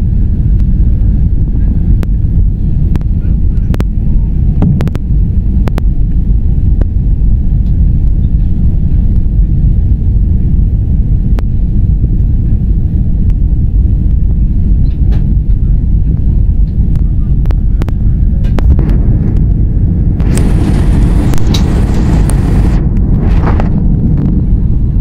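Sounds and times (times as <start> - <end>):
airliner engines rumbling in cabin: 0.0 - 25.0.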